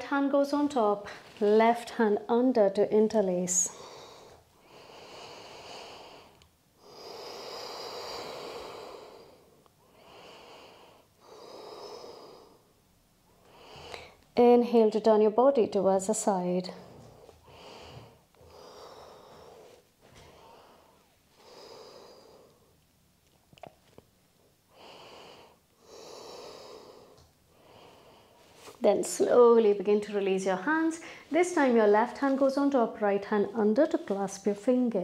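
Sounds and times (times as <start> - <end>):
woman breathing slowly: 3.7 - 14.3, 16.7 - 22.8, 24.7 - 28.8, 31.0 - 31.4.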